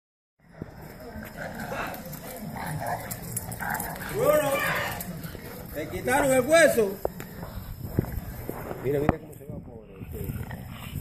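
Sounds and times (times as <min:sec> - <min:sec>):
people talking: 0:00.5 - 0:10.7.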